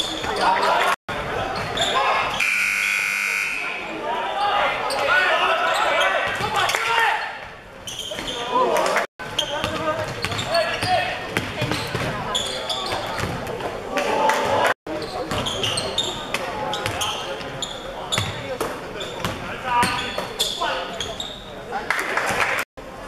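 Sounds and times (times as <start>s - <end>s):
game buzzer: 2.4s - 3.8s.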